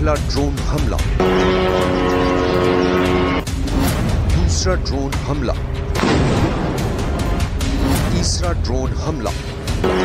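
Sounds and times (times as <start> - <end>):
drone engine buzz: 1.0 - 4.4, 9.5 - 10.0.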